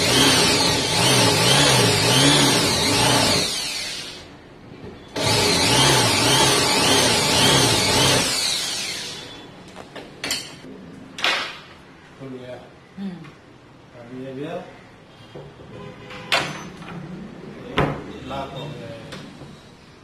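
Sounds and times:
electric drill running: 0.0 - 4.3, 5.2 - 9.4.

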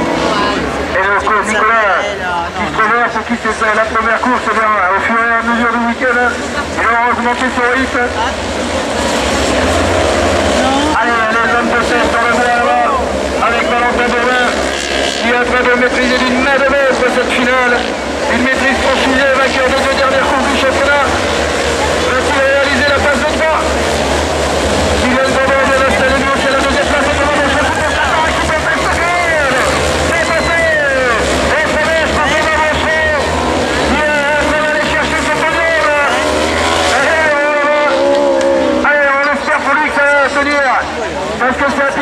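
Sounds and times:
crowd voices: 0.0 - 42.0
race car engines revving: 0.0 - 42.0.

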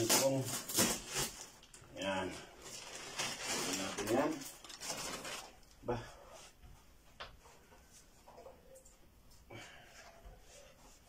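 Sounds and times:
plastic wrap crinkling: 0.0 - 5.8.

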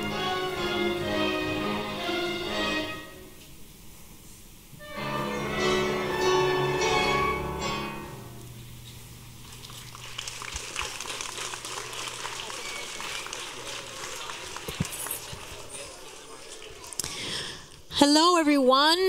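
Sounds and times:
orchestra music: 0.0 - 3.5, 4.8 - 8.7
children applauding: 9.4 - 17.6
children chattering: 12.2 - 17.2.

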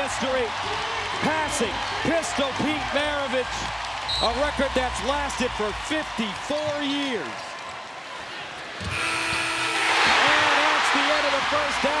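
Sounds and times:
crowd noise: 0.0 - 12.0
arena horn buzz: 8.9 - 10.0.

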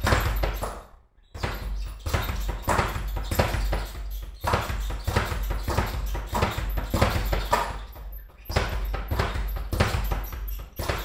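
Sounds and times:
speed bag drumming on rebound board: 0.0 - 11.0.

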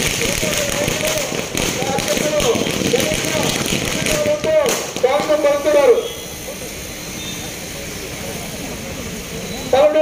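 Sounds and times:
crowd talking: 0.0 - 10.0.

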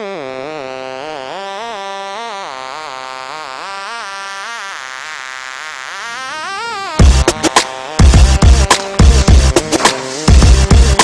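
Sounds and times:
wavering synthesizer tone: 0.0 - 11.0.

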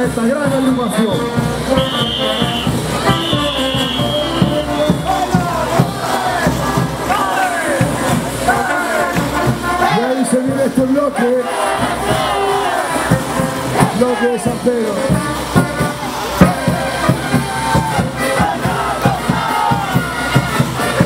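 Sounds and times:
crowd cheering and shouting: 0.0 - 21.0
live band parade music: 0.0 - 21.0.

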